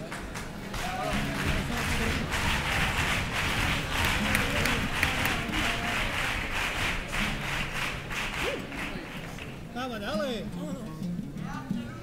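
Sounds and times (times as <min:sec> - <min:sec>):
voices calling out in crowd: 0:00.0 - 0:07.4
audience applauding: 0:00.0 - 0:09.7.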